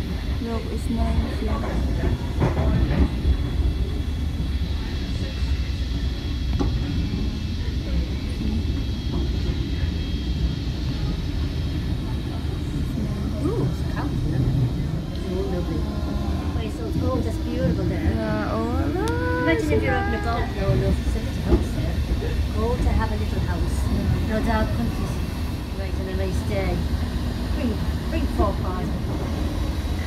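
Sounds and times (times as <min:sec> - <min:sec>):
faint voices: 0:00.0 - 0:30.0.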